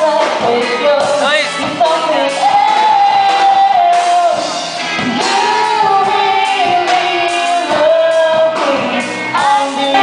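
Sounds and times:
drums: 0.0 - 10.0
electric guitars: 0.0 - 10.0
keyboard: 0.0 - 10.0
woman singing: 0.0 - 10.0.

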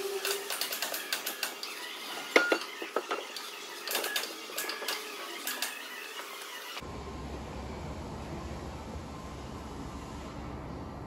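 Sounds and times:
low workshop hum: 0.0 - 11.0.

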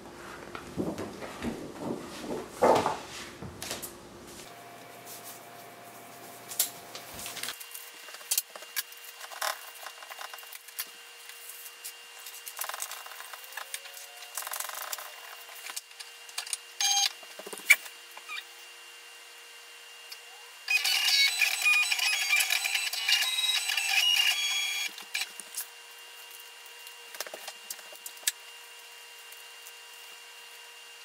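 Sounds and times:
cutting plotter motors whirring: 20.1 - 25.4.

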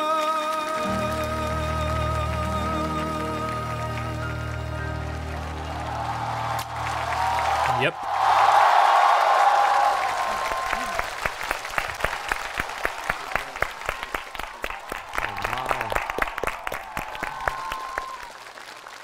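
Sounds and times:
audience applauding: 0.0 - 19.0.

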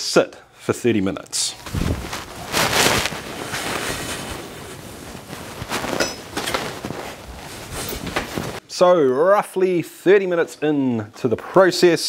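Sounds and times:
rustling: 1.4 - 8.6.

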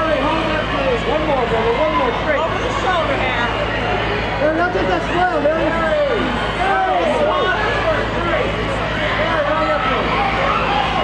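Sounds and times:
crowd shouting: 0.0 - 11.0
steady low hum: 0.0 - 11.0.

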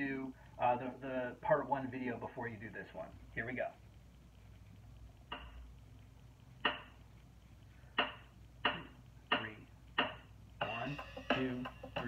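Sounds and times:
hip-hop drum beat claps: 6.6 - 7.0, 8.0 - 12.0.

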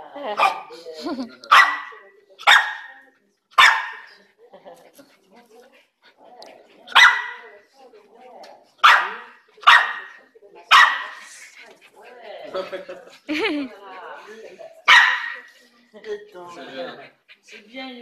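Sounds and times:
faint murmur of voices: 0.0 - 18.0
small dog barking: 0.4 - 0.7, 1.5 - 3.0, 3.6 - 4.1, 6.9 - 7.4, 8.8 - 11.2, 14.9 - 15.5.

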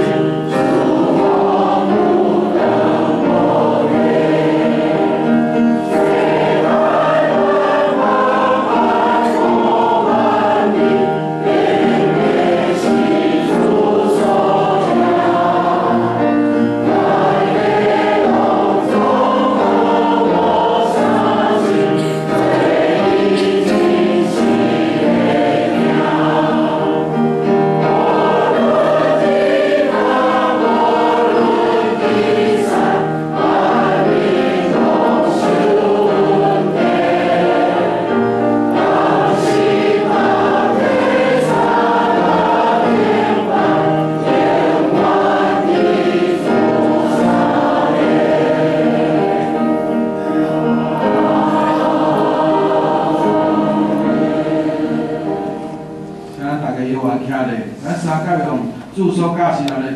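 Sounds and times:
congregation singing a hymn: 0.0 - 59.9.

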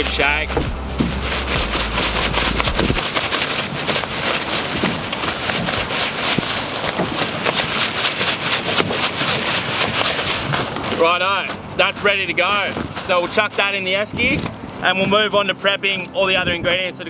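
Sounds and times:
plastic bag crinkling: 0.7 - 11.3.

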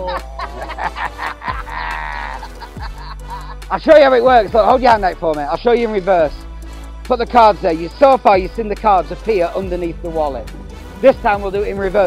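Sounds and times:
person crying out in amazement: 0.0 - 3.6
background music: 0.0 - 12.0.

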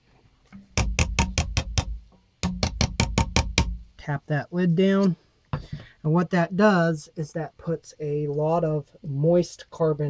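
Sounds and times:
fingers tapping metal can lid: 0.5 - 3.8.

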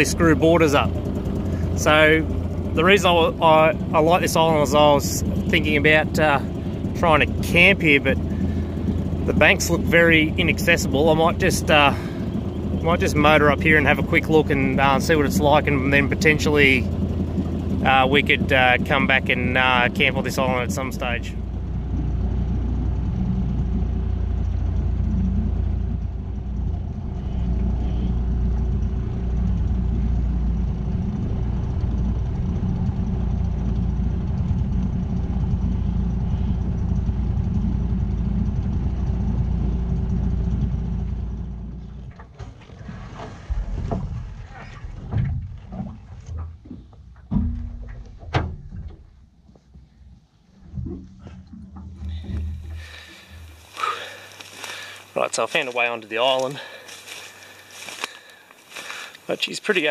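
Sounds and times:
outboard motor running: 0.0 - 59.9
boat knocking against bank: 0.4 - 26.9, 40.2 - 49.9, 50.6 - 54.3
person climbing out onto grass: 50.6 - 55.2, 56.4 - 59.3.

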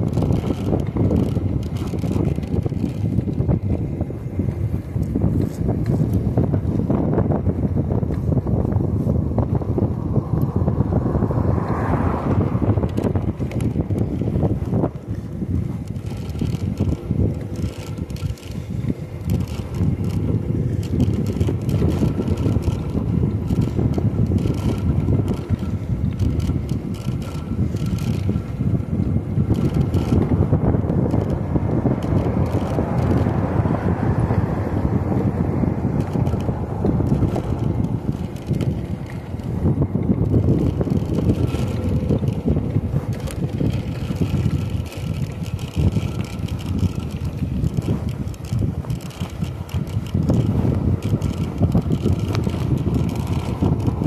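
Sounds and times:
road noise: 0.0 - 54.0
wind rushing over microphone: 0.0 - 54.0.

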